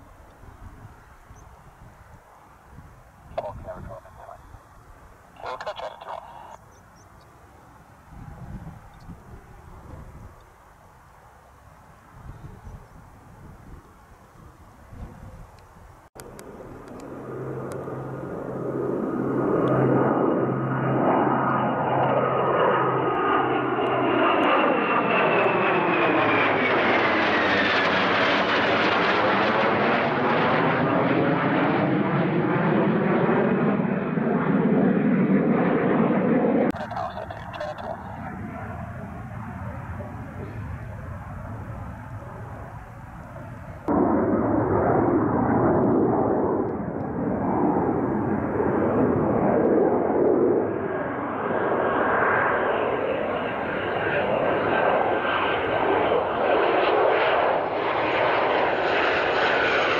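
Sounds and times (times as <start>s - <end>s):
jets passing overhead: 0.0s - 15.4s, 16.0s - 59.9s
high turbine whine: 0.0s - 32.8s, 36.2s - 59.9s.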